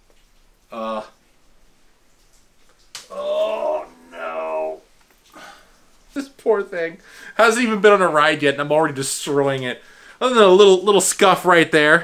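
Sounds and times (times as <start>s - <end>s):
man making drawn-out vocal sounds: 3.0s - 4.8s.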